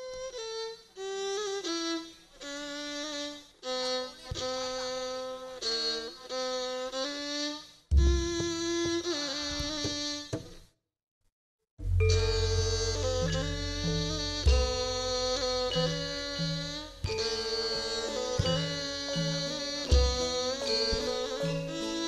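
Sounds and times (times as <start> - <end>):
bowed fiddle melody: 0.0 - 10.2, 11.8 - 22.0
deep drum stroke: 11.8 - 21.8.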